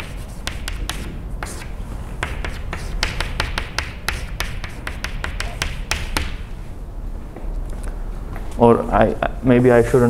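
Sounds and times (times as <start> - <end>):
chalk scratching on blackboard: 0.0 - 6.5
chalk tapping on blackboard: 0.0 - 6.5.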